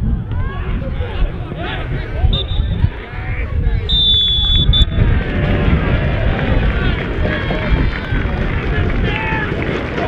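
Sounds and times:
spectators chattering: 0.0 - 10.0
referee's whistle blasts: 2.3 - 2.8, 3.9 - 5.0.

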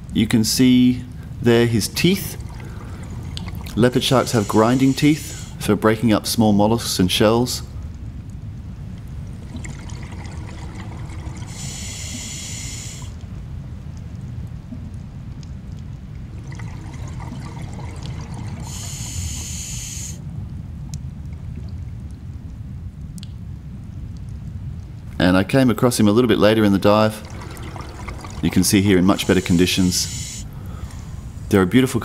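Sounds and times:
low rush of water: 0.0 - 32.0
diver exhaling bubbles: 2.2 - 5.7, 9.4 - 13.2, 27.0 - 31.6.

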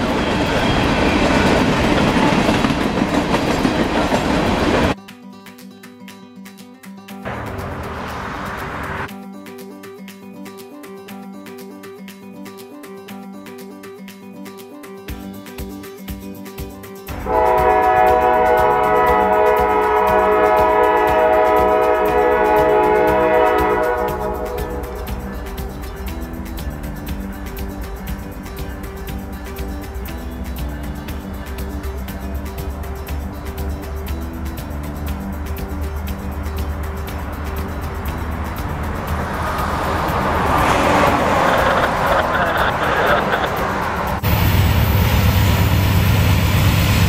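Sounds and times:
diesel locomotive engine: 0.0 - 5.0, 7.3 - 9.1, 17.1 - 47.0
train rumble: 0.0 - 5.0, 7.3 - 9.1, 17.1 - 33.3, 34.8 - 47.0
steady music-like tones: 17.0 - 46.7
locomotive air horn blast: 17.1 - 25.2.

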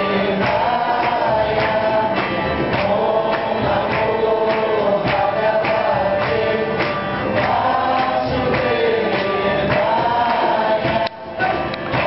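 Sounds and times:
group chanting: 0.0 - 12.0
steady percussion beat: 0.0 - 12.0.

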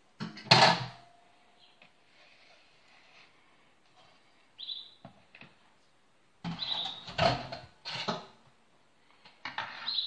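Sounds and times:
high chirp-like squeaks: 6.5 - 7.2.

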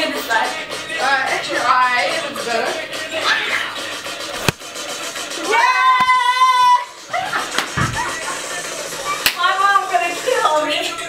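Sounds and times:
woman laughing: 6.8 - 8.6.

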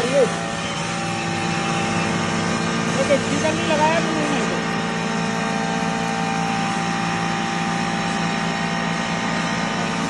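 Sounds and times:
flour mill motor hum and whine: 0.0 - 10.0.

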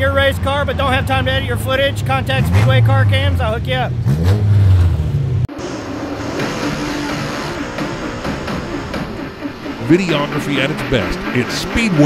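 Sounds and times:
race car engines running: 0.0 - 12.0.

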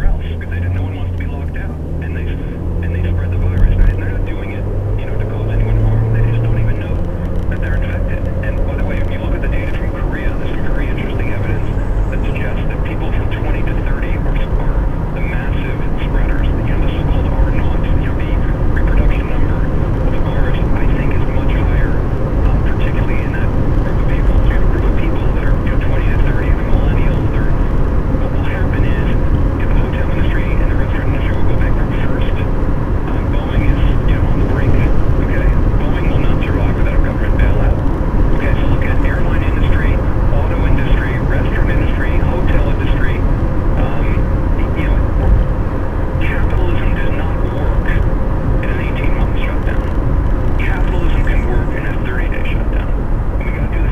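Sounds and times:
car road and engine noise: 0.0 - 53.9
indistinct voices: 0.0 - 53.9.

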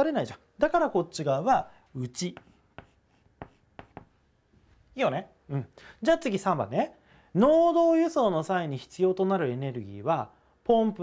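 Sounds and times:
chalk tapping on blackboard: 2.2 - 4.2.

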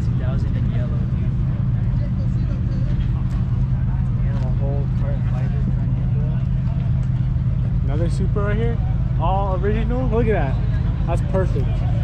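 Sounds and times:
car engine idling: 0.0 - 12.0
faint voices talking: 0.0 - 12.0.

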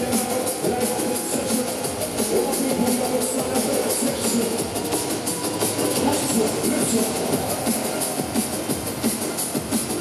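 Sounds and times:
drum and bass music: 0.0 - 10.0.

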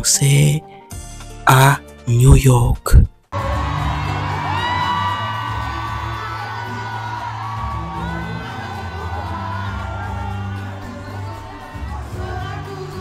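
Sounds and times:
crowd whooping and cheering: 3.4 - 13.0
live singing with gliding notes: 6.5 - 13.0.

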